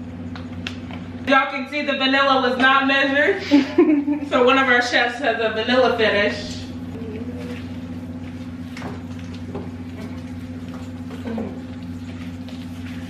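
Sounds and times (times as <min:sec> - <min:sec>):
steady low hum: 0:00.0 - 0:13.0
spatula stirring thick dough: 0:06.0 - 0:13.0.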